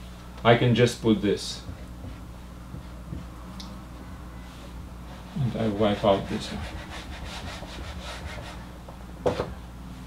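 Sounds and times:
eraser rubbing on whiteboard: 5.4s - 8.6s.

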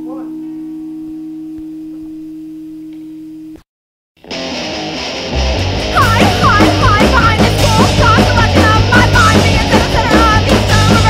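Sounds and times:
distorted electric guitar feedback: 4.2s - 11.0s.

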